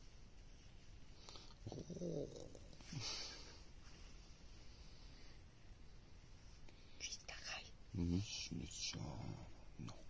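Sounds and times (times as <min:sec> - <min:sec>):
faint whisper: 0:01.2 - 0:03.6, 0:06.6 - 0:10.0.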